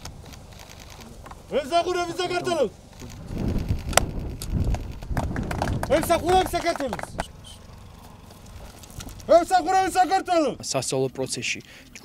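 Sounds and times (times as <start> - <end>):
low rumble of outdoor background: 0.0 - 12.0.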